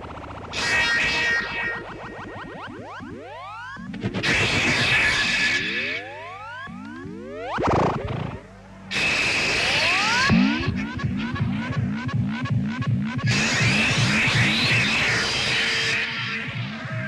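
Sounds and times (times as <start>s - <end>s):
synthesizer tones sweeping upward: 0.0s - 8.6s, 9.3s - 17.0s
steady low hum: 0.0s - 17.0s.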